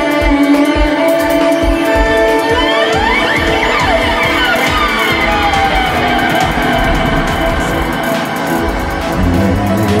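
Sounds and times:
backing track with low beat: 0:00.0 - 0:10.0.

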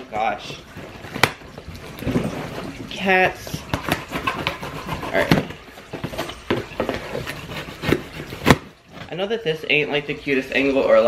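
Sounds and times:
cardboard box tearing: 0:03.7 - 0:08.7.

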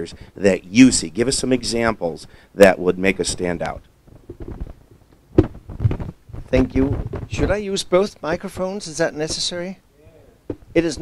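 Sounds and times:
microphone handling rumble: 0:03.3 - 0:09.6
sharp knock on microphone: 0:04.2 - 0:04.8, 0:05.4 - 0:07.5.

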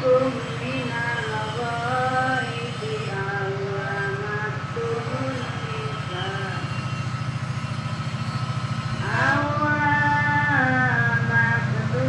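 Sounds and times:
diesel locomotive engine throbbing: 0:00.0 - 0:12.0.

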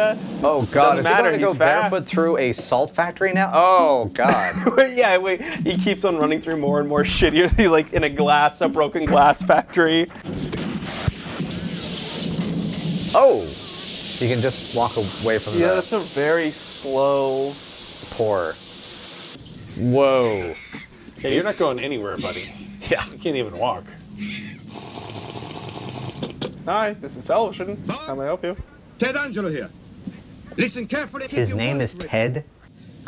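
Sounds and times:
granular material pouring from chute: 0:11.6 - 0:19.2
water running: 0:11.6 - 0:22.6, 0:24.7 - 0:26.4.

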